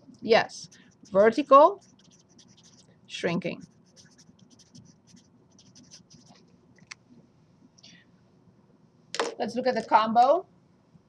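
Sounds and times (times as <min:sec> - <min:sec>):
marker scratching on paper: 0:00.5 - 0:06.4.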